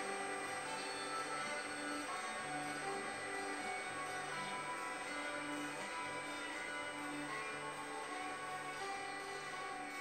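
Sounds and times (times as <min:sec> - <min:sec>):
slow sustained background music: 0:00.0 - 0:10.0.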